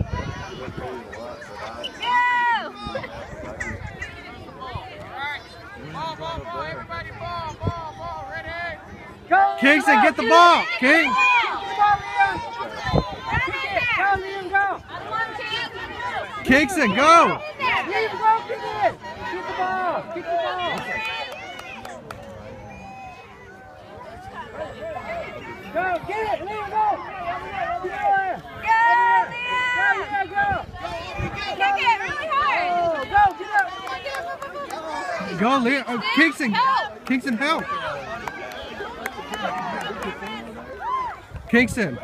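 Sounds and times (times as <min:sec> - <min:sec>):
voices calling out: 0:00.0 - 0:42.0.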